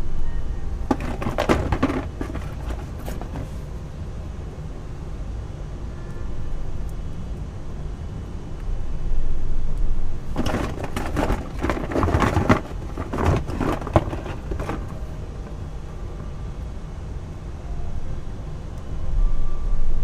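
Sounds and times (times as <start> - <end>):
steady low rumble: 0.0 - 20.0
painting materials scraping and rustling: 0.8 - 3.7, 10.2 - 15.6.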